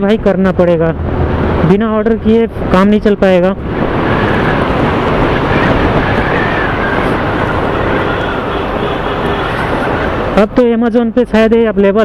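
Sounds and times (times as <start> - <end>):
wind and motorcycle engine: 0.0 - 10.7.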